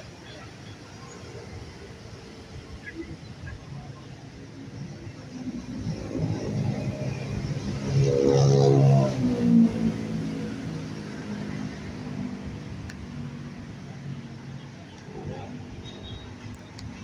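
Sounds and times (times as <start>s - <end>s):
vehicle engine passing by: 5.8s - 12.7s.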